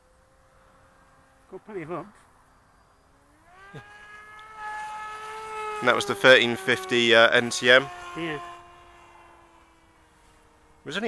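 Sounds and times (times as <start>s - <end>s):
model plane motor whining: 3.0s - 11.0s.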